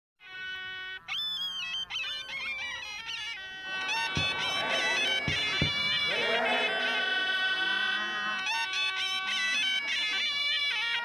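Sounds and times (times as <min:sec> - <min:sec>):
reedy wind instrument notes: 0:00.2 - 0:11.0.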